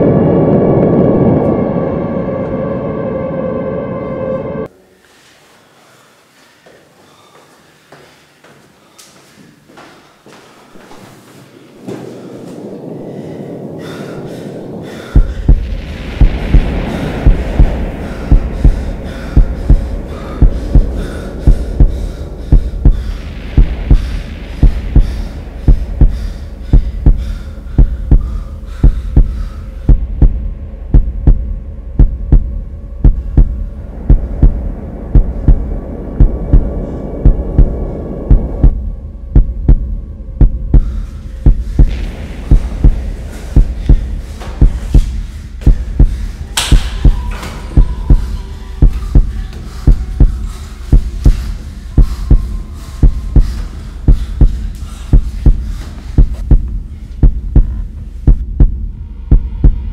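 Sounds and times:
low droning hum: 0.0s - 5.0s, 11.8s - 59.9s
heartbeat thumps: 14.7s - 59.9s.

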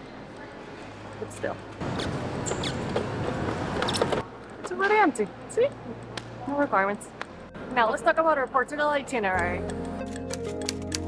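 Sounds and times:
plastic dispenser squeaks and clicks: 1.9s - 3.1s, 3.8s - 4.2s.

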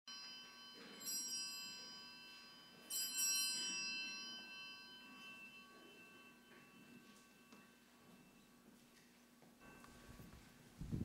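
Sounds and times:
small church bell ringing: 0.1s - 10.8s.

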